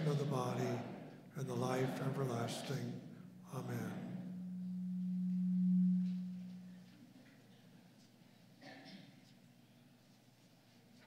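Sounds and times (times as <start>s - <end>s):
steady low hum tone: 0.0s - 8.6s.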